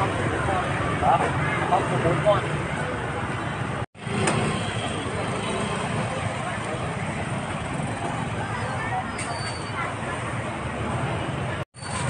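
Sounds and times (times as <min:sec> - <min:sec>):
voices: 0:04.9 - 0:11.6.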